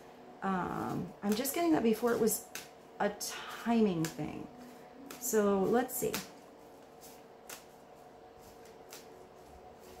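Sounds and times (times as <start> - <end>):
faint steady hum: 0.0 - 10.0
cards being handled: 1.3 - 2.8, 4.0 - 10.0.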